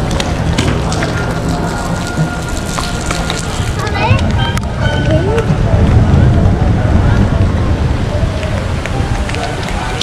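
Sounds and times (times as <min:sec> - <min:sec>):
close raindrop ticks: 0:00.0 - 0:04.7, 0:08.4 - 0:10.0
rain on wet pavement: 0:00.0 - 0:10.0.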